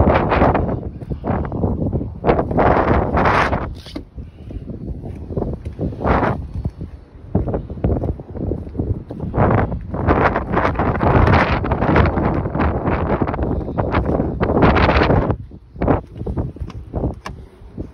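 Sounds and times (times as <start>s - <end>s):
wind buffeting a microphone: 0.0s - 17.9s.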